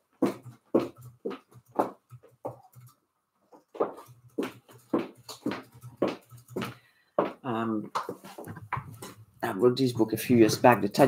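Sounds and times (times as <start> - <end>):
heeled footsteps on tiled floor: 0.1 - 2.7, 3.5 - 9.2.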